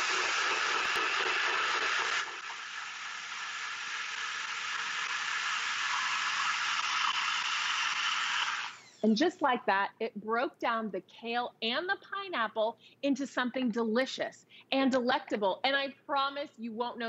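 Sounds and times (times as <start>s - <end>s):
blender running: 0.0s - 9.0s.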